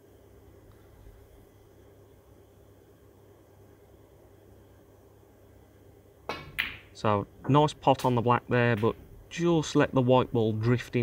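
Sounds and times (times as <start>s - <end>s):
faint low room hum: 0.0s - 11.0s
man speaking: 7.0s - 11.0s.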